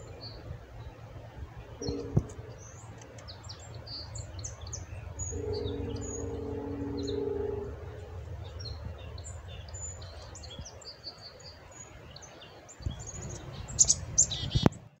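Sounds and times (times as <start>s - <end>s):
low steady hum: 0.0s - 15.0s
chickadees chirping: 1.7s - 14.8s.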